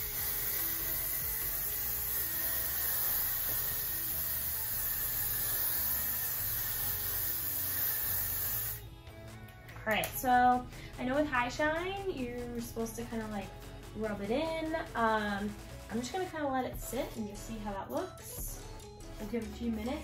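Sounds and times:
aerosol can spraying hiss: 0.0s - 8.9s.

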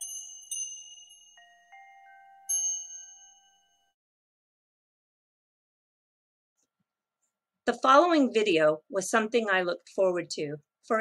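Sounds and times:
bell-like jingle chime: 0.0s - 4.0s.

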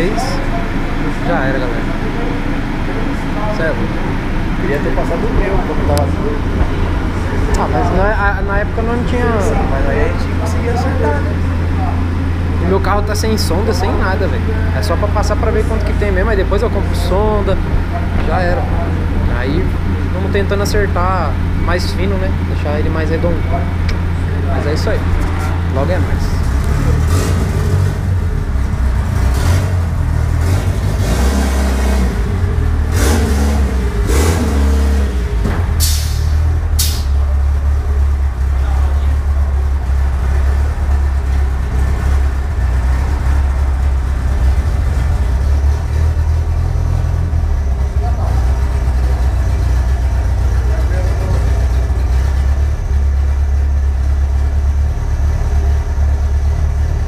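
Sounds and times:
car engine rumbling on dynamometer: 0.0s - 57.0s.

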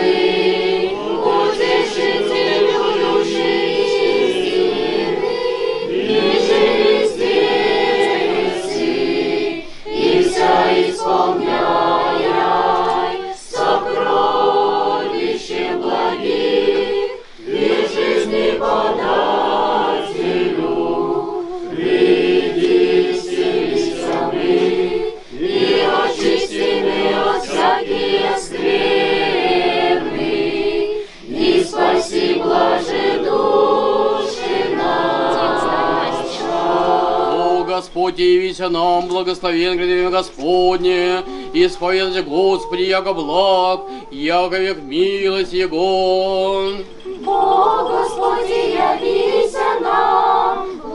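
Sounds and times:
female choir chanting a cappella: 0.0s - 50.9s.

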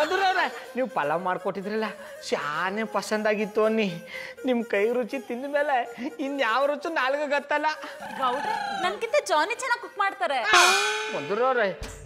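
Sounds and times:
ringing metallic clang: 10.5s - 12.0s.

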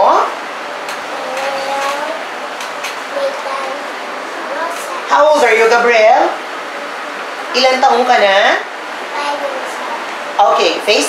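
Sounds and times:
steady background hiss: 0.0s - 11.0s
young child speaking softly: 1.1s - 2.2s, 3.1s - 3.9s, 4.5s - 5.1s, 9.2s - 10.0s.

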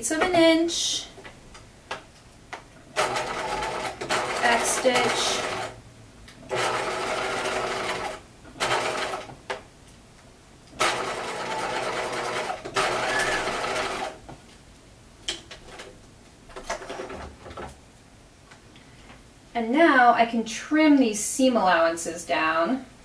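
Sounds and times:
sewing machine stitching: 2.9s - 5.8s, 6.5s - 9.3s, 10.8s - 14.2s.

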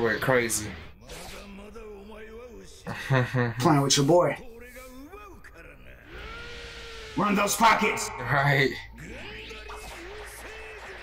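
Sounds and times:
rising steady tone: 6.0s - 10.1s.

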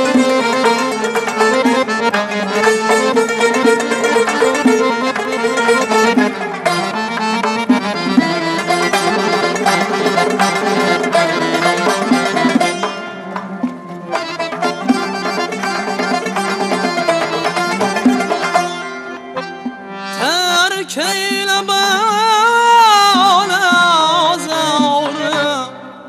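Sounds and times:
fast melody line: 0.0s - 19.5s.

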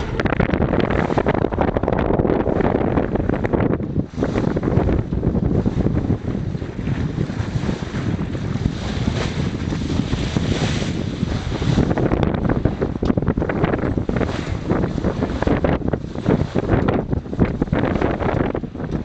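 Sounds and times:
water splashing along hull: 0.0s - 19.0s
wind buffeting microphone: 0.0s - 19.0s.

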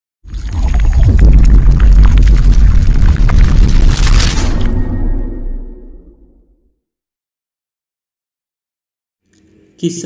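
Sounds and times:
scattered crackles: 0.2s - 5.4s
deep rumble: 0.4s - 6.7s.

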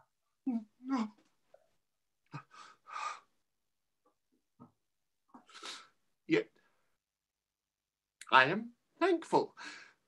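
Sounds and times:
man breathing heavily and sighing: 2.3s - 3.4s.

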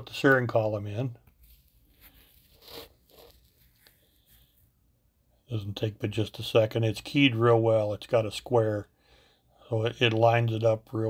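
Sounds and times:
plastic parts rustling and scraping: 1.3s - 4.6s.

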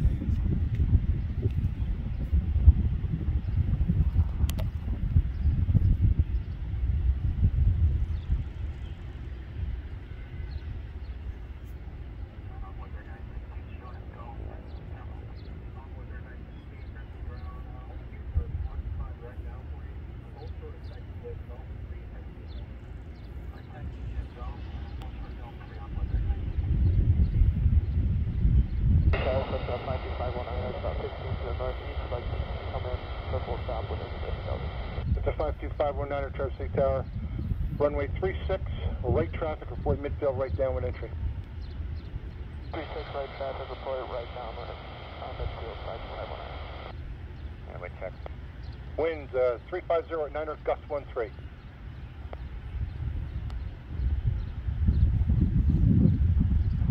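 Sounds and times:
low gusty rumble: 0.0s - 56.9s
radio scanner hiss: 11.7s - 26.7s, 29.2s - 37.1s, 37.8s - 41.1s, 42.7s - 47.0s, 47.7s - 48.4s, 49.0s - 51.4s
garbled radio voice: 12.4s - 22.6s, 23.5s - 26.7s, 29.2s - 37.1s, 37.8s - 41.2s, 42.7s - 46.9s, 47.7s - 48.2s, 49.0s - 51.3s.

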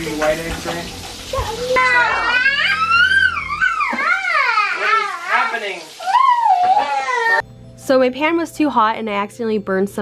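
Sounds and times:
toddler whining: 1.4s - 7.4s.

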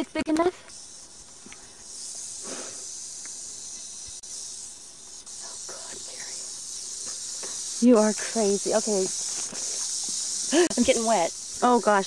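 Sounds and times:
rattlesnake rattle buzzing: 0.0s - 12.0s.

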